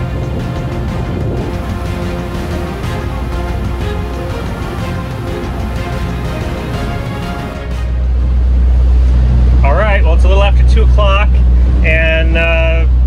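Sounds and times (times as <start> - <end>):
background music: 0.0 - 9.1
motor boat engines droning: 0.0 - 13.0.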